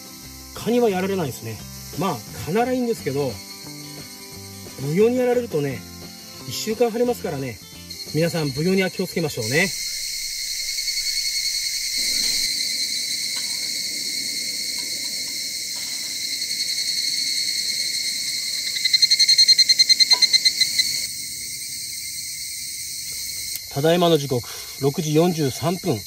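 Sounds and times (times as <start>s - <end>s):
cicada fast pulsing call: 0.0s - 26.0s
insects trilling: 0.0s - 26.0s.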